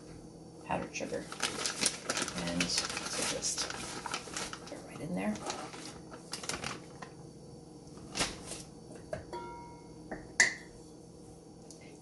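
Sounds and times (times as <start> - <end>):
sugar bag rustling: 0.7 - 7.2, 7.9 - 8.9
metal bowl ringing: 9.2 - 10.7.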